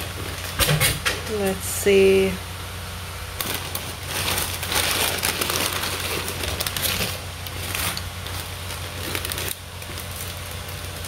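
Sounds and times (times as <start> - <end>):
paper wrapping crinkling: 3.4 - 11.0.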